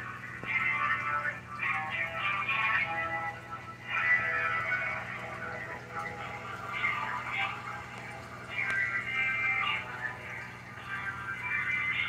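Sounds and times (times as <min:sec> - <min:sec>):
music through a phone speaker: 0:00.0 - 0:12.0
steady low hum: 0:00.0 - 0:12.0.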